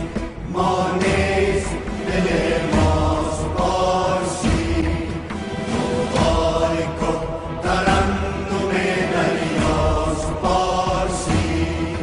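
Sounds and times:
song with chant-like singing: 0.0s - 12.0s.

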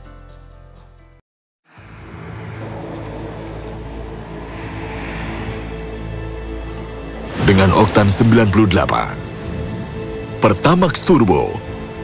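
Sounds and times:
music soundtrack: 0.0s - 12.0s.

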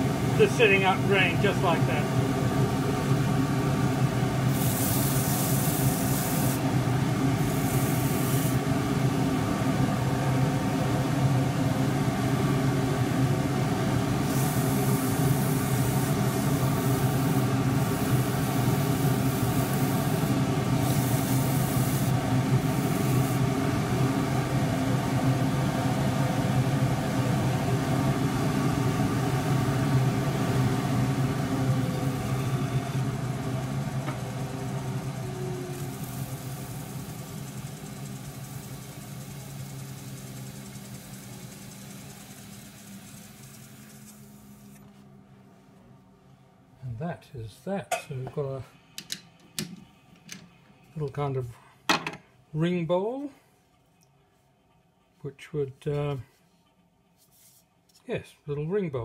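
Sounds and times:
sandpaper hiss: 4.5s - 6.6s, 7.4s - 8.6s, 14.2s - 23.4s
wood lathe motor hum: 27.5s - 44.6s.

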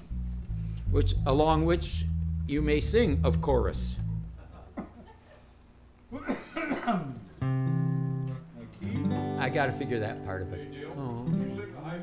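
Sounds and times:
man's voice: 0.9s - 4.0s
acoustic guitar chord ringing: 7.4s - 11.8s.

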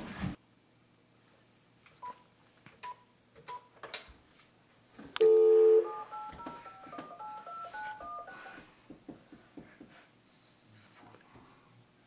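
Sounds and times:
telephone dial tone: 5.2s - 8.6s
touch-tone keypad beeps: 5.2s - 8.6s.

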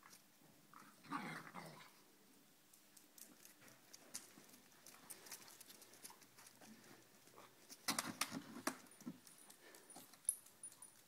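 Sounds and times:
clicks and scuffs of dogs playing: 2.7s - 11.0s.

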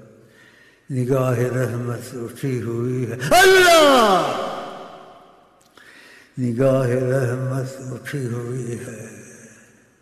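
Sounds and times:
man chanting unaccompanied: 0.9s - 4.6s, 6.4s - 9.6s.

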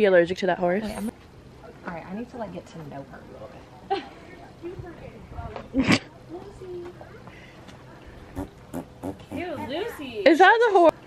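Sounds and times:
horse passing gas: 8.3s - 10.2s.

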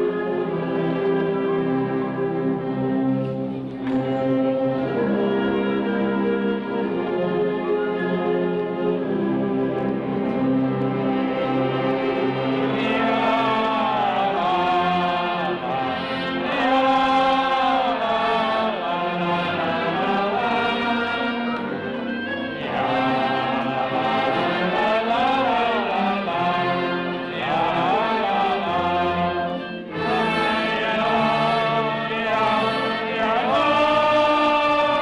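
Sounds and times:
wind band playing: 0.0s - 35.0s.

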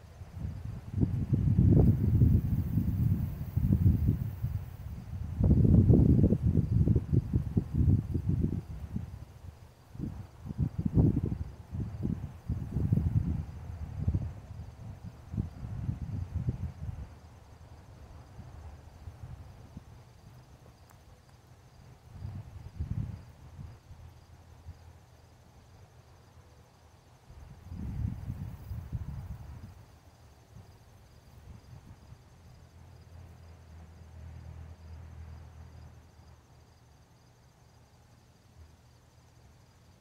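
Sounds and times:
crickets chirping: 0.0s - 40.0s
wind buffeting microphone: 0.3s - 17.2s, 22.1s - 24.0s, 27.4s - 29.8s.

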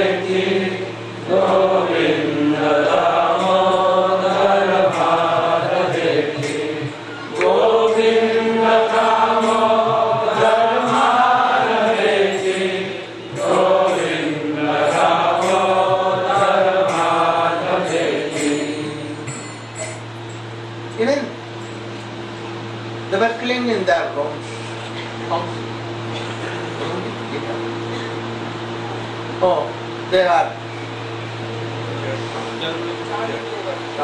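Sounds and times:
steady low hum: 0.0s - 34.0s.

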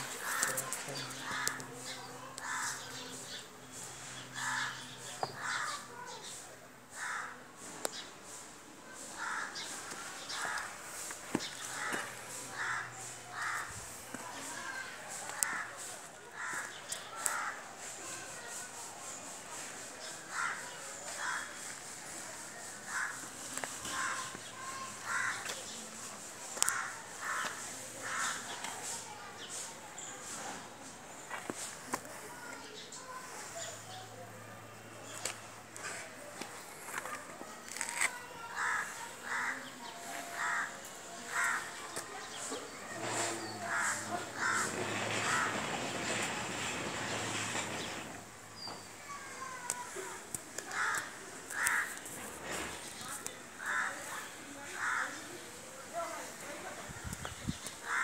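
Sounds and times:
crow cawing: 6.9s - 7.4s, 9.2s - 9.6s, 11.7s - 13.7s, 16.4s - 17.5s, 25.0s - 25.4s, 38.5s - 39.6s, 40.3s - 41.7s, 43.6s - 45.5s, 50.7s - 51.9s, 53.6s - 54.0s, 54.8s - 55.2s.

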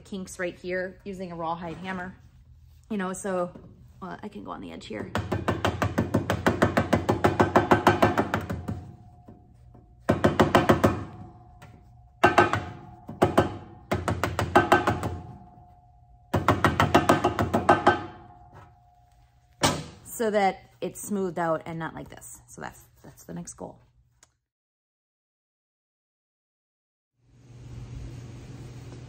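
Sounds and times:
mallet striking copper lid: 12.2s - 15.6s, 16.3s - 18.7s.

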